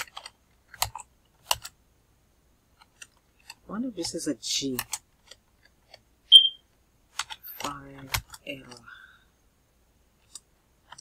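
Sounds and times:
short high-pitched beep: 6.3 - 6.6.

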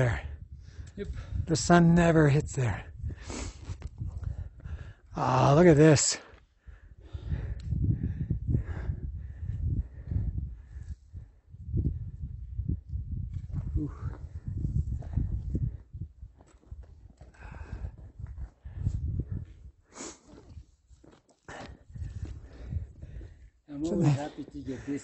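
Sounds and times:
wind buffeting microphone: 0.0 - 5.2, 6.4 - 20.8, 21.6 - 25.0
heavy breathing: 6.3 - 10.9, 17.3 - 20.5, 21.5 - 25.0.

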